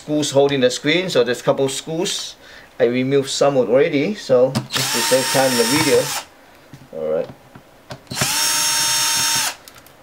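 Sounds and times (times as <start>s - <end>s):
cordless drill motor whine: 4.7s - 6.3s, 8.1s - 9.6s.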